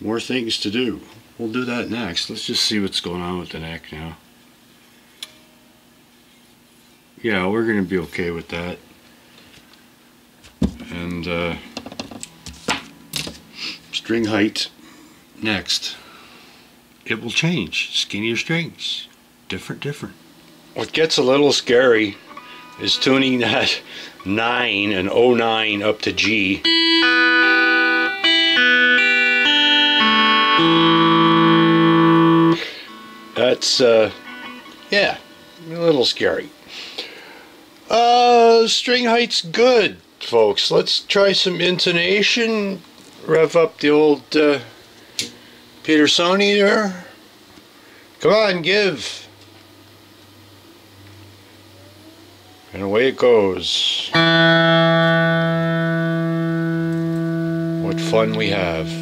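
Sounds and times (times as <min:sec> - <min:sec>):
faint steady hum: 0:00.0 - 0:59.0
electric guitar strumming chords: 0:10.9 - 0:14.9, 0:20.3 - 0:36.7, 0:54.1 - 0:59.0.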